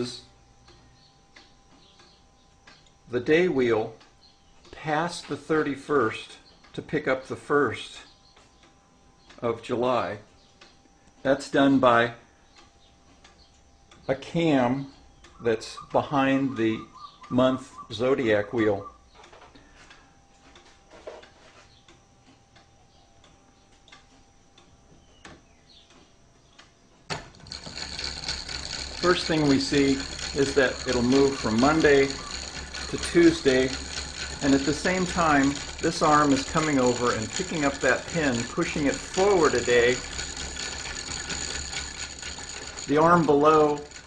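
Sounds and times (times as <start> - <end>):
rustling mechanical sound: 19.1 - 22.6, 23.6 - 44.0
wooden gears clicking: 25.1 - 44.0.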